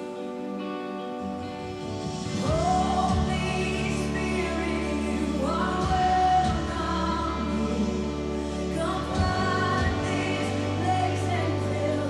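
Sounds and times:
worship song singing: 1.7 - 12.0.

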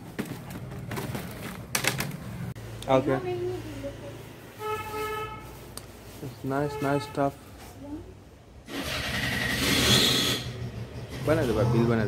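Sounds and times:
plastic basket clacking: 0.0 - 2.3
plastic wrapping rustling: 0.0 - 2.5.

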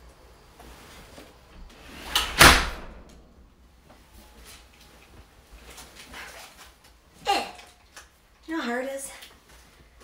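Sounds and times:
loud thump: 1.8 - 3.4.

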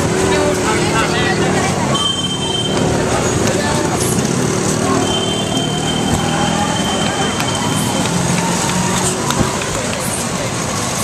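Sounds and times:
people talking in street: 0.0 - 11.0
steady traffic noise: 0.0 - 11.0.

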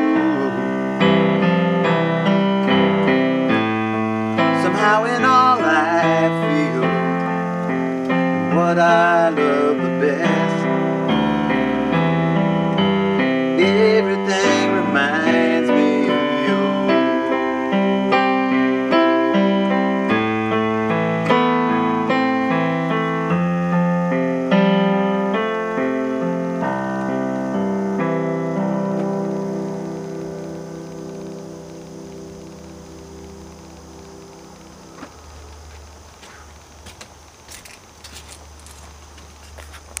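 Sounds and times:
keyboard piano notes and chord: 0.0 - 37.4.

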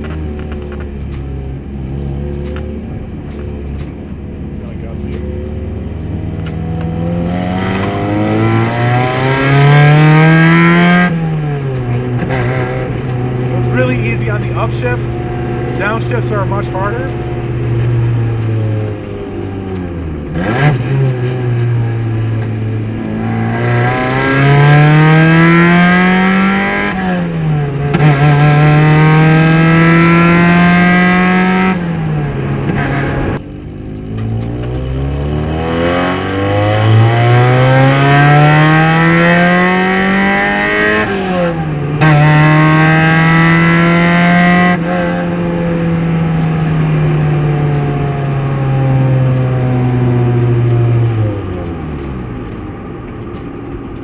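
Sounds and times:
car engine revving through gears: 0.0 - 54.0.

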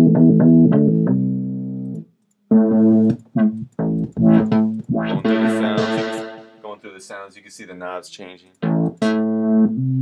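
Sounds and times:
synth bass line: 2.5 - 6.6.

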